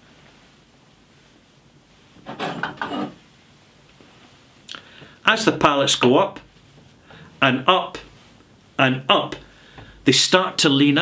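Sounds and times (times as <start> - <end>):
wood scraping and knocking: 2.2 - 3.2.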